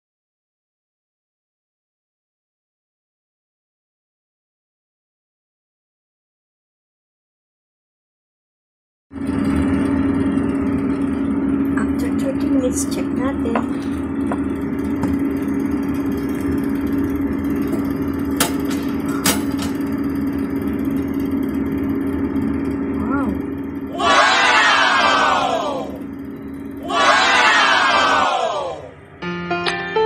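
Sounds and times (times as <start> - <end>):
electric oven humming: 9.1 - 30.0
crowd exclaiming wow: 23.9 - 26.0, 26.8 - 28.9.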